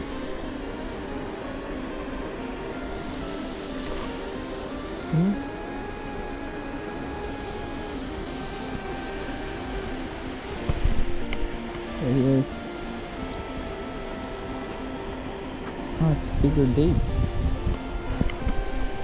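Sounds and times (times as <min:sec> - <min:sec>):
background music repeating tones: 0:00.0 - 0:19.0.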